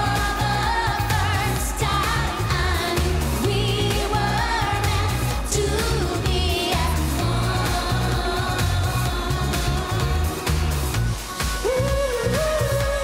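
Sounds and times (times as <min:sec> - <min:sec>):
woman singing: 0:00.0 - 0:10.7
driving beat: 0:00.0 - 0:13.0.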